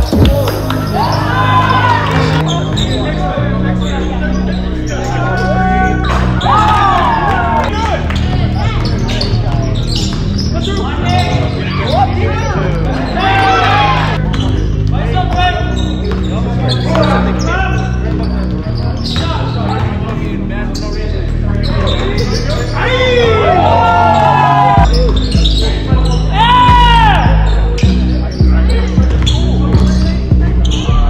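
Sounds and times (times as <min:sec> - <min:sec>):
background music with bass line: 0:00.0 - 0:31.0
sneakers squeaking: 0:00.0 - 0:31.0.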